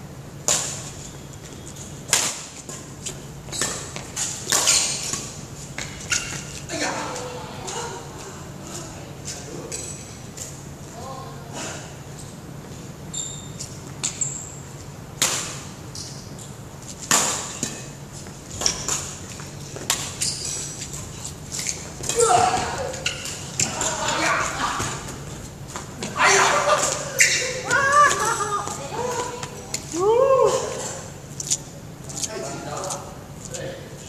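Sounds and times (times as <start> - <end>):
sharp squeak: 13.1 - 14.6, 27.2 - 27.6.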